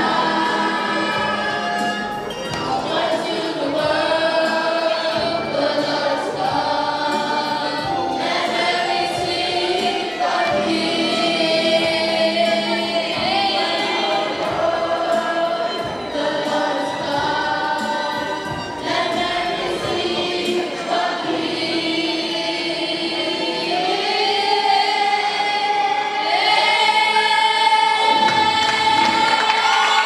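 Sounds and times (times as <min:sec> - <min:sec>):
youth choir singing: 0:00.0 - 0:30.0.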